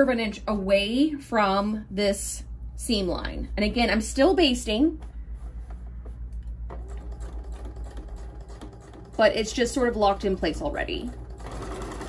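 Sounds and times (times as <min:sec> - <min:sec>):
sewing machine motor hum: 0:06.7 - 0:12.0.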